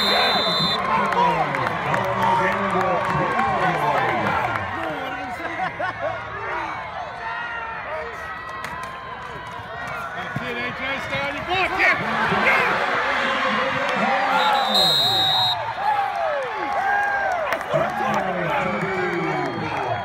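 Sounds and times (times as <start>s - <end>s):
referee's whistle: 0.0s - 0.9s, 14.3s - 15.6s
crowd shouting and cheering: 0.0s - 20.0s.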